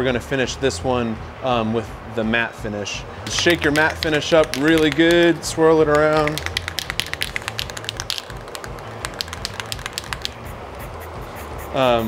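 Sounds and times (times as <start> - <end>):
aerosol can mixing ball rattling: 3.3 - 10.9.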